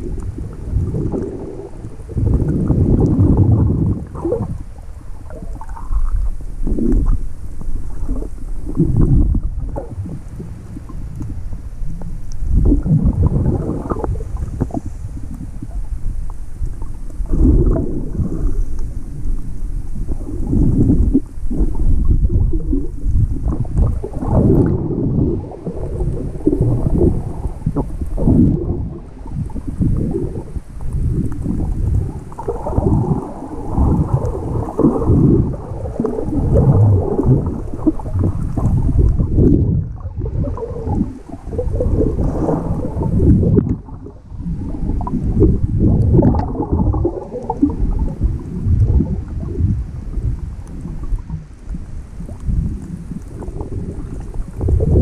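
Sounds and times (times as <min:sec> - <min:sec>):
underwater water rushing: 0:00.0 - 0:55.0.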